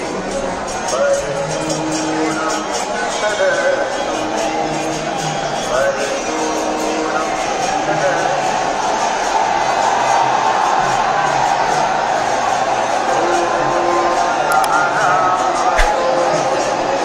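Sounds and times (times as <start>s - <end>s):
large street crowd din: 0.0s - 17.0s
music playing: 13.2s - 17.0s.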